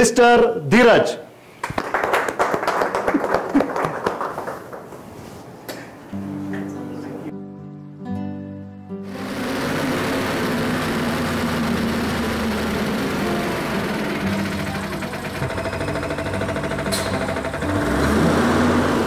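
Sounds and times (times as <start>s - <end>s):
bus diesel engine running: 9.1s - 19.0s
street traffic noise: 9.2s - 19.0s.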